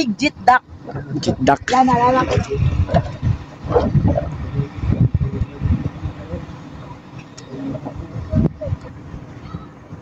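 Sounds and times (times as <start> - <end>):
wind on microphone: 0.6 - 10.0
woman's voice: 1.5 - 2.8.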